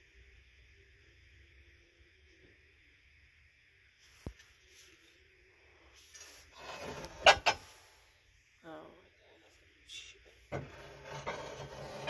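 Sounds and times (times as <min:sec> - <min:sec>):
ceramic jug scraping on shelf: 0:06.4 - 0:07.7, 0:10.5 - 0:12.0.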